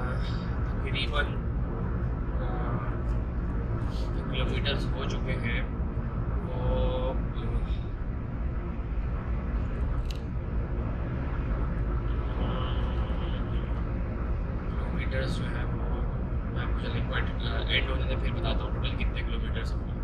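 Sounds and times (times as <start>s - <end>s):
car cabin road rumble: 0.0s - 20.0s.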